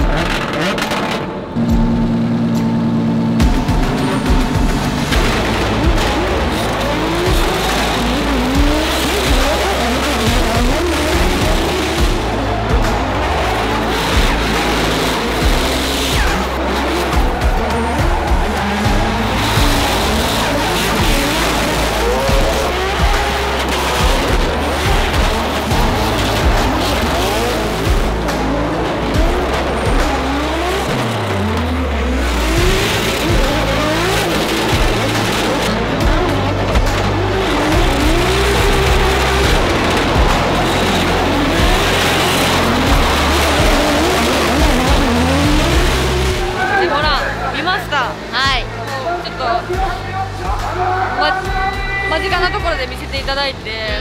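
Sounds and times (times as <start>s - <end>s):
falling bass sweep: 0.0s - 47.5s
background music with bass line: 0.0s - 54.0s
car engines revving: 0.0s - 54.0s.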